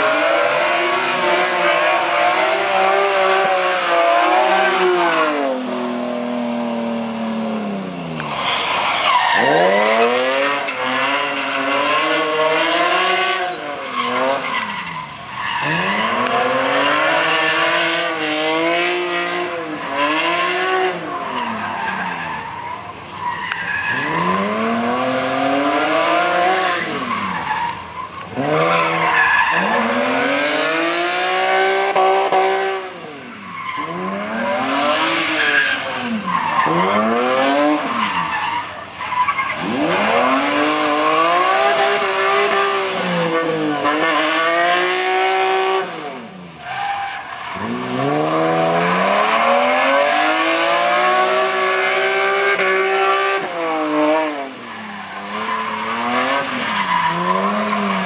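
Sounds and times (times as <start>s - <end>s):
car engine revving hard: 0.0s - 8.8s, 9.4s - 21.6s, 23.8s - 27.4s, 28.3s - 38.4s, 39.5s - 46.4s, 47.5s - 58.0s.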